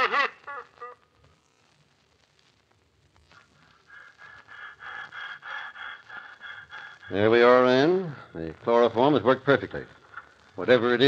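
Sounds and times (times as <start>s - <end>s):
rapid rhythmic panting: 3.5s - 8.4s.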